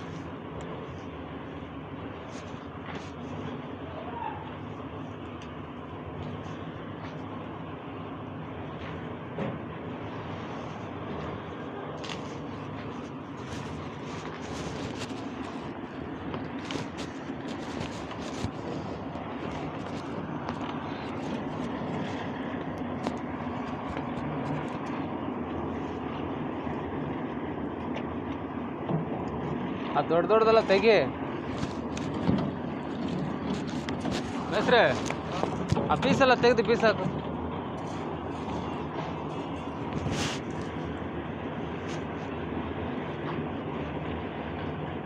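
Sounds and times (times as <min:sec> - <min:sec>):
steady background noise: 0:00.0 - 0:45.0.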